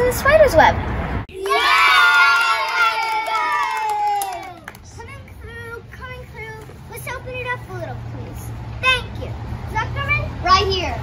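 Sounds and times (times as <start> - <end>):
children cheering and shouting: 1.3 - 4.9.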